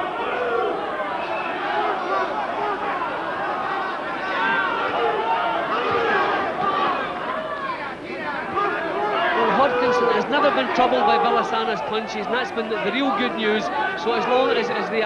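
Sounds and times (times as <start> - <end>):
crowd shouting and chattering: 0.0 - 15.0.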